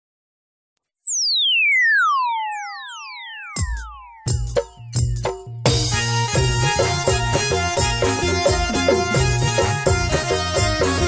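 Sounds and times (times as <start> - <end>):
synthesized tone gliding down: 0.9 - 4.4.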